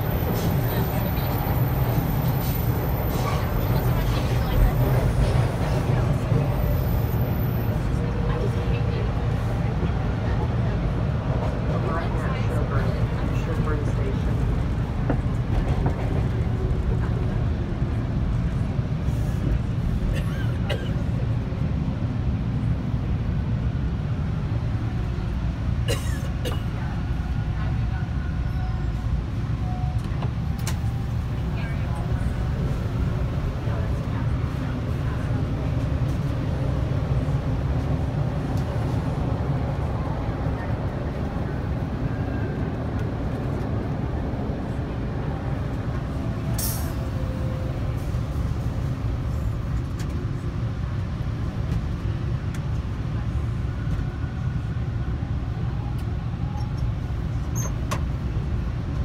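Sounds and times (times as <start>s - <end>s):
faint passenger voices: 0.0s - 59.0s
subway car rumble: 0.0s - 59.0s.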